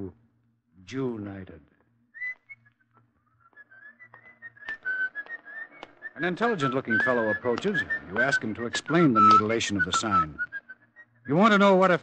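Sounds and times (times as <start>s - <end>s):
person whistling a tune: 2.2s - 11.4s.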